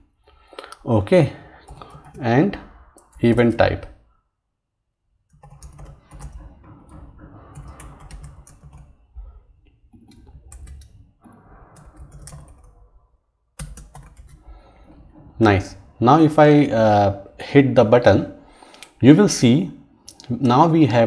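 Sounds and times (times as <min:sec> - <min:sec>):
typing on computer keyboard: 0:01.6 - 0:03.5, 0:05.3 - 0:09.0, 0:09.9 - 0:12.8, 0:13.6 - 0:15.1.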